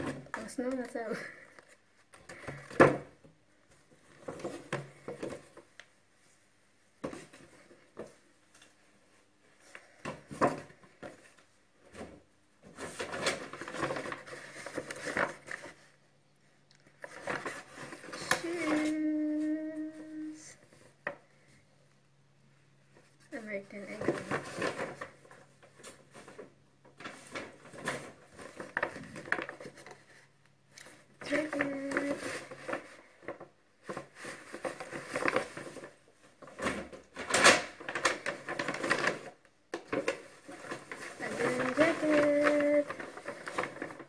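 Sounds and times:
bags rustling and crinkling: 9.4s - 16.0s, 23.2s - 44.0s.

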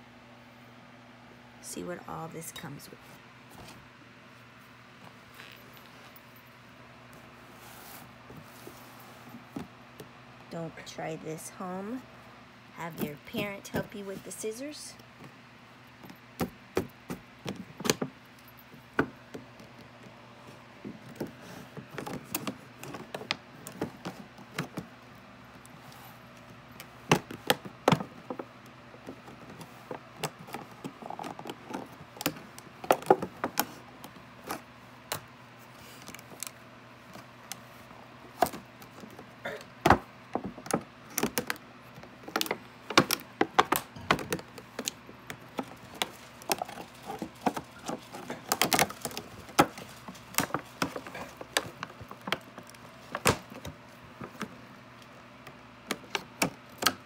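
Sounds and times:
plastic packaging crackling: 42.2s - 53.9s.

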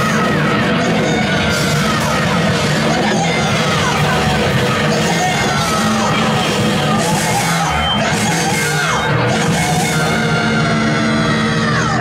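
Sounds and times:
drums with cymbal crashes: 0.0s - 12.0s
electric guitars: 0.0s - 12.0s
singer yelling into a microphone: 0.0s - 12.0s.

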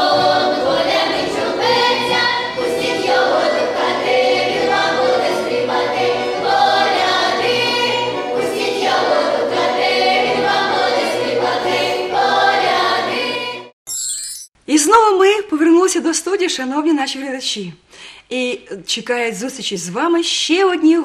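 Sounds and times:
female choir singing carol: 0.0s - 13.7s.

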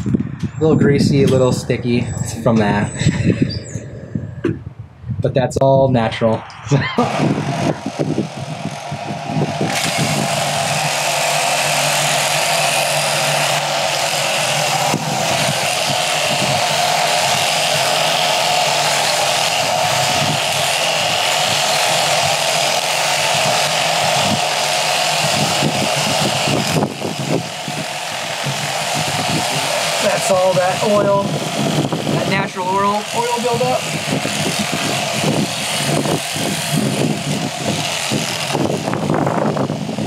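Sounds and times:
electric sheep shears whirring: 0.0s - 4.3s, 6.4s - 40.0s.

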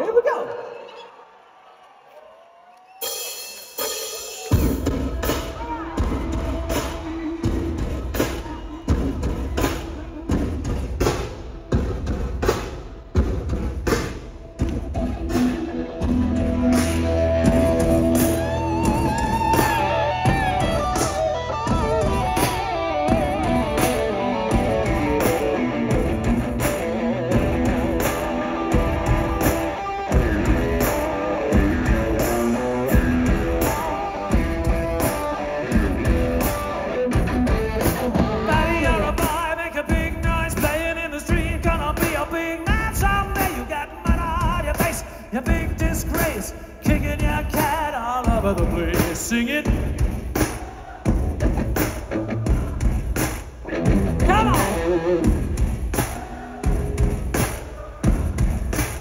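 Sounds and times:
live rock band: 3.1s - 59.0s
electric guitar lead: 14.9s - 39.1s, 53.7s - 55.6s.

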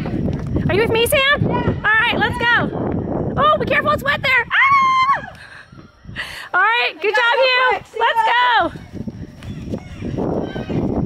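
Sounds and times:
wind on microphone: 0.0s - 6.6s, 7.2s - 11.0s
running footsteps on grass: 6.8s - 11.0s.

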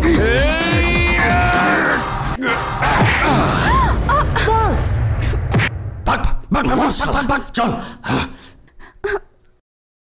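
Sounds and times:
man groaning: 0.0s - 4.1s
man gasping in pain: 7.8s - 9.3s.

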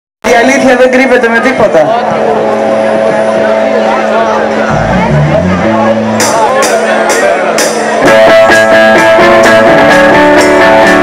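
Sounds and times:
crowd noise: 0.2s - 11.0s
live band holding a chord: 2.0s - 11.0s.

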